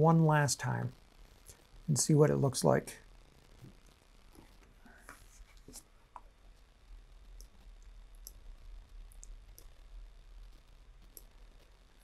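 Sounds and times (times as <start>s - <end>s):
computer mouse clicks: 8.2s - 8.4s.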